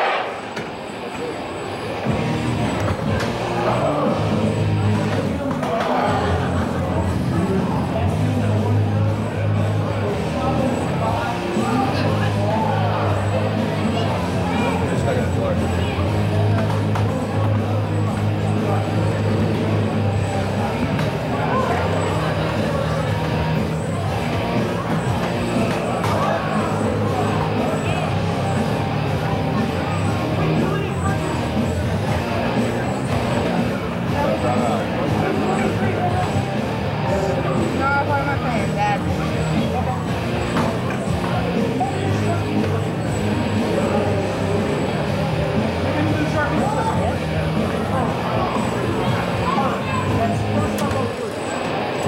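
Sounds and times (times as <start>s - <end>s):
crowd voices: 0.0s - 52.0s
background rock music: 6.1s - 50.8s.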